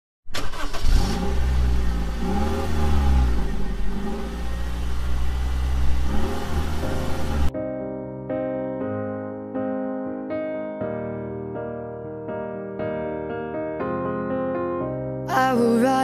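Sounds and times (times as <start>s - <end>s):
car engine revving: 0.4s - 7.5s
piano music: 3.8s - 16.0s.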